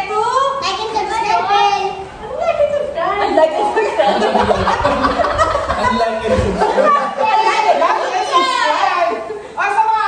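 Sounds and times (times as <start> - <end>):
group of people laughing: 3.2 - 9.6.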